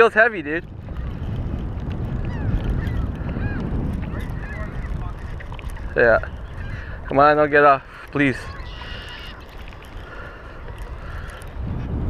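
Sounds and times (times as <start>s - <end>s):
wind rumble on microphone: 0.0s - 12.0s
faint short bird calls: 8.3s - 9.5s.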